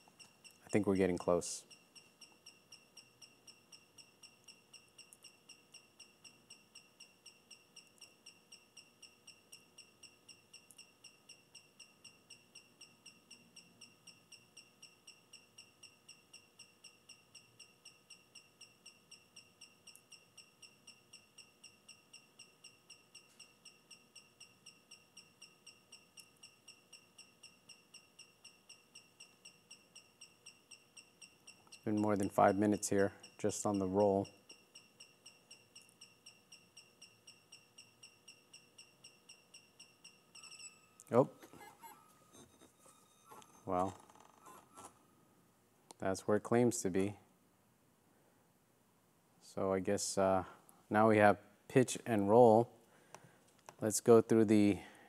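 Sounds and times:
gimbal motors whining and chirping: 0:23.0 - 0:45.0.

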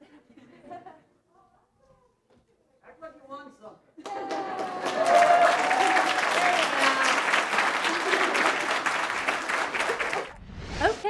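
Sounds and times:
whooping cheer: 0:04.0 - 0:08.6
audience applauding: 0:04.0 - 0:10.4.

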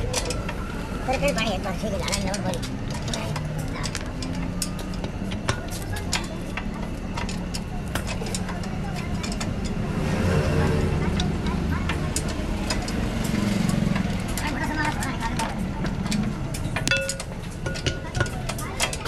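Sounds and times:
passing traffic rumble: 0:00.0 - 0:19.0
tools clinking on metal: 0:16.1 - 0:19.0.

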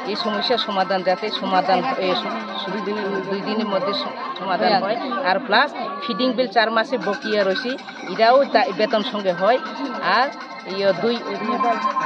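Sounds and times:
women talking at once: 0:03.9 - 0:05.2.

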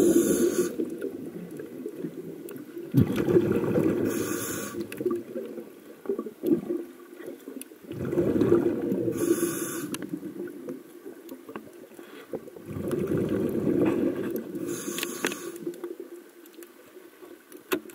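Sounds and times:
regulator hiss: 0:00.0 - 0:00.8, 0:04.0 - 0:04.9, 0:09.1 - 0:10.0, 0:14.6 - 0:15.6
bubbly exhalations underwater: 0:00.0 - 0:06.9, 0:07.9 - 0:10.6, 0:12.6 - 0:14.7.

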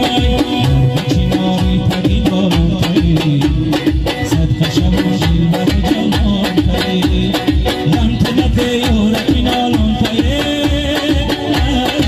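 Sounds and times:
fast drum beat: 0:00.0 - 0:12.0
man singing into a microphone: 0:00.0 - 0:12.0.

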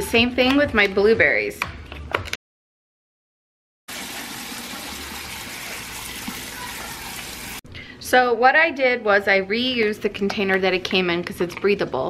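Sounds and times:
faucet water running onto berries: 0:03.9 - 0:07.6.

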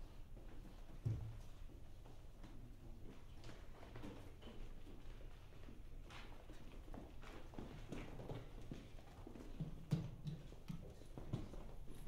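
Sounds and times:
knocks and clicks on wooden stage: 0:09.4 - 0:11.6.

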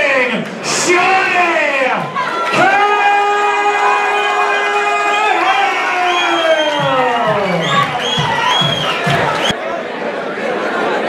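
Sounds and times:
announcer's amplified voice: 0:00.0 - 0:09.5
crowd cheering and whooping: 0:02.0 - 0:09.6.

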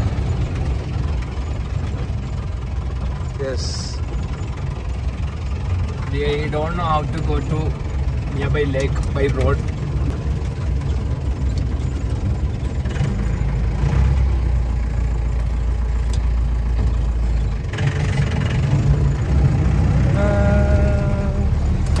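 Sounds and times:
jeep engine low rumble: 0:00.0 - 0:22.0.

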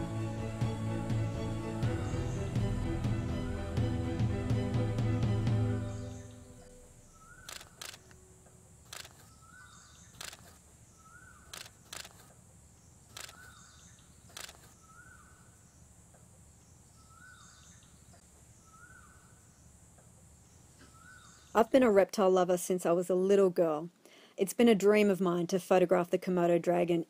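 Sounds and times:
camera shutter clicking: 0:07.4 - 0:08.2, 0:08.9 - 0:09.4, 0:10.2 - 0:10.6, 0:11.5 - 0:12.3, 0:13.1 - 0:13.6, 0:14.3 - 0:14.8.

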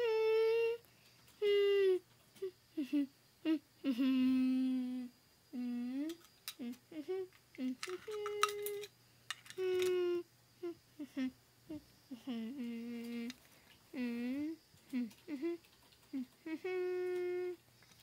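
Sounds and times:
person humming: 0:00.0 - 0:00.8, 0:01.4 - 0:08.9, 0:09.5 - 0:17.6
hard toys clicking: 0:07.3 - 0:10.0.

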